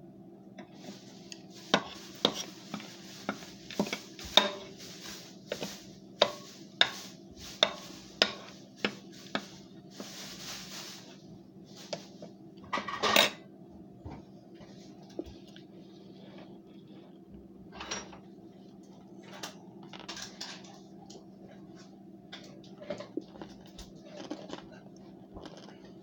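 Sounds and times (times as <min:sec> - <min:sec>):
faint steady hum: 0:00.0 - 0:26.0.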